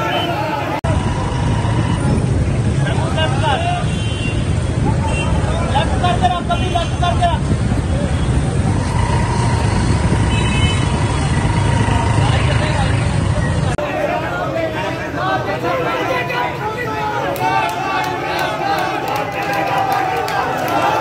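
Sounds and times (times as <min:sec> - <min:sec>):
vehicle engine rumbling: 0:00.0 - 0:15.2
voices calling out: 0:00.0 - 0:21.0.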